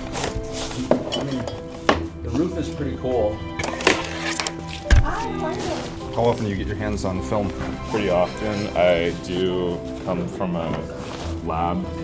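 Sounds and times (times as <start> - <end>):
background music: 0.0 - 12.0
film cans clinking: 0.8 - 2.1, 3.5 - 6.0.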